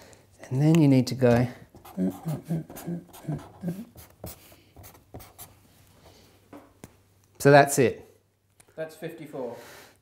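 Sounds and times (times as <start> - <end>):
marker scratching on paper: 1.8 - 5.6.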